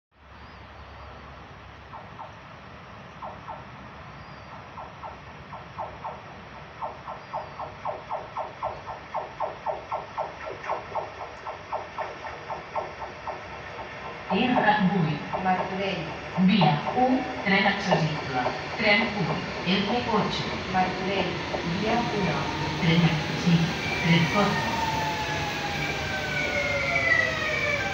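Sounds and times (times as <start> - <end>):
low steady background noise: 0.2 - 25.2
train wheels clicking: 2.0 - 27.9.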